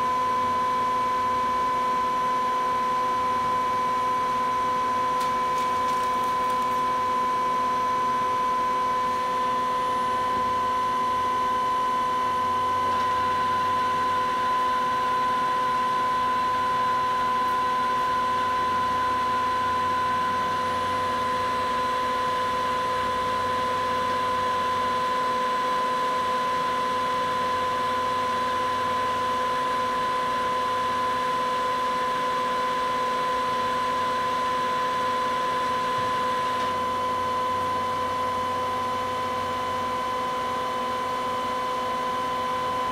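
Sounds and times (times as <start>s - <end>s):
lathe humming with high whine: 0.0s - 42.9s.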